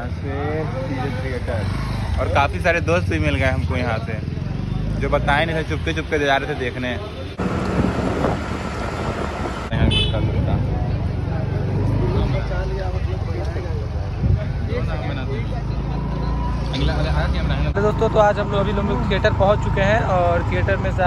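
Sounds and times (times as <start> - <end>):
road noise: 0.0 - 21.0
wind buffeting: 7.4 - 10.8.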